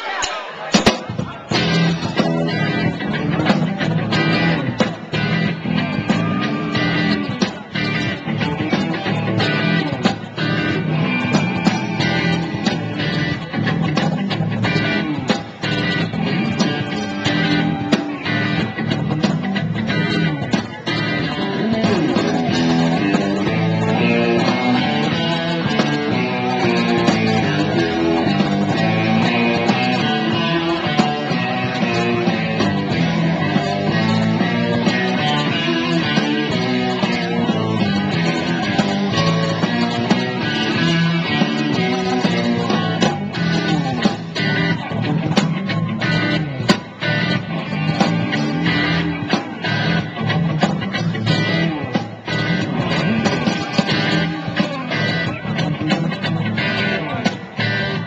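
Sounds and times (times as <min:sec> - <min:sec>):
rock band playing: 0:00.0 - 0:58.0.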